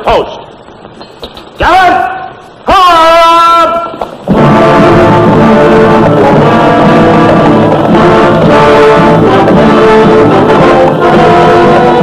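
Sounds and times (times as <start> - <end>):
orchestral music with brass: 4.3 - 12.0.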